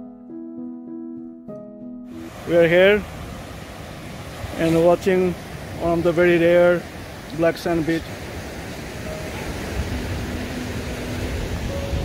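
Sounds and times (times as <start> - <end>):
ocean surf washing on shore: 2.1 - 12.0
wind buffeting microphone: 3.0 - 12.0.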